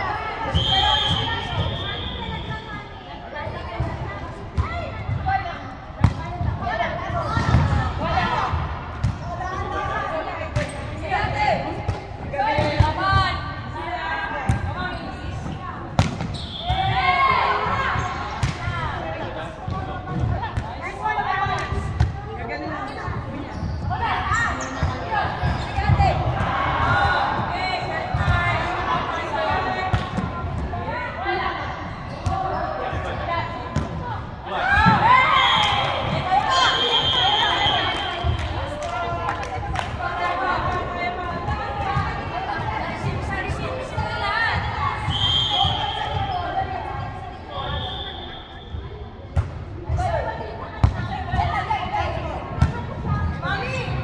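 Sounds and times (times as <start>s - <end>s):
players calling and shouting: 0.0s - 54.0s.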